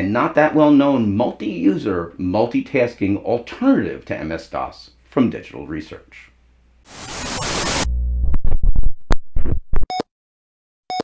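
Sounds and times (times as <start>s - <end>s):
television static hissing: 6.9s - 7.9s.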